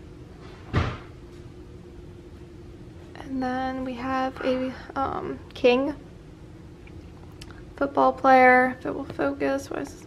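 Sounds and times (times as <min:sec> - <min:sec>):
steady low hum: 0:00.0 - 0:10.0
dull thump: 0:00.7 - 0:01.1.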